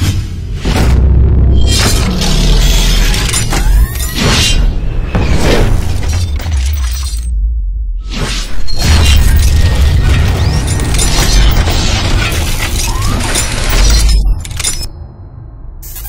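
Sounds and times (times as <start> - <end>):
cinematic music: 0.0 - 16.0.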